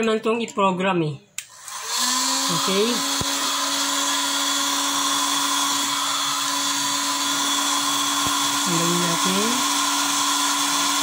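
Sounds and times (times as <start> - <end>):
hot-air station blowing and whining: 1.5 - 11.0.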